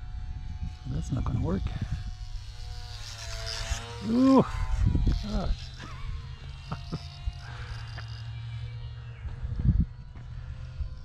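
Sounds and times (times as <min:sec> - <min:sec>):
wind rumble on microphone: 0:00.0 - 0:03.0, 0:04.4 - 0:06.2, 0:09.2 - 0:11.0
distant electric motor and propeller whine: 0:00.0 - 0:11.0.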